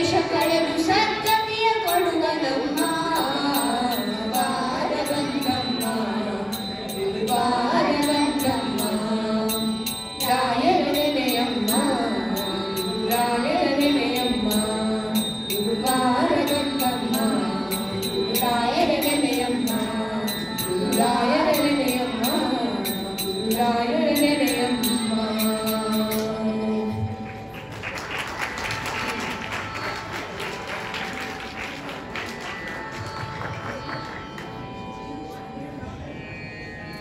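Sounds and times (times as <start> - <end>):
child singing into microphone: 0.0 - 9.7
children singing into microphones: 0.0 - 27.5
steady drone: 0.0 - 27.6
audience clapping: 27.2 - 34.6.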